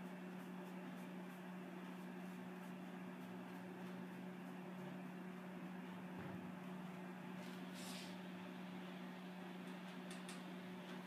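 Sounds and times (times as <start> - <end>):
low electrical hum: 0.0 - 11.0
faint hiss: 7.5 - 8.3.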